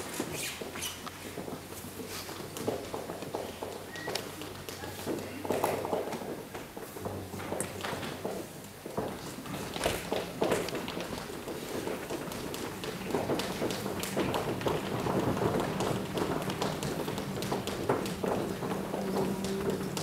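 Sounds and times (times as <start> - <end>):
hands and feet tapping: 0.0 - 20.0.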